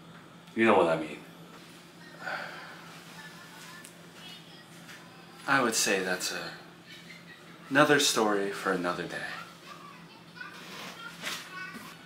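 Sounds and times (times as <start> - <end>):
steady low hum: 0.0 - 12.0
faint children's voices: 6.4 - 12.0.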